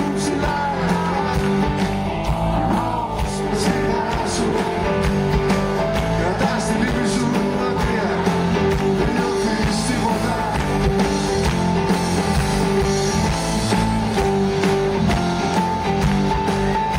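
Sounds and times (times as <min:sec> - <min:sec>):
person singing: 0:00.0 - 0:11.2
electric guitar: 0:00.0 - 0:16.9.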